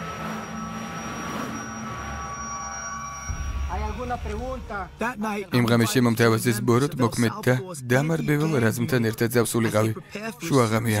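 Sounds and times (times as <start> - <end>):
steady droning soundtrack: 0.0 - 7.4.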